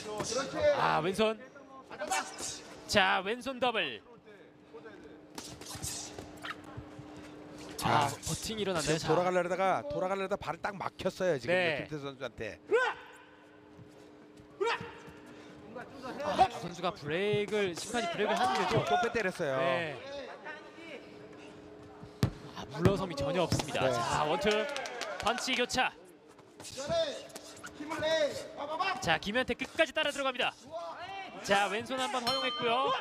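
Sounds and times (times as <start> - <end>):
man shouting exclamation: 12.6 - 13.3, 14.6 - 15.0, 23.7 - 25.1.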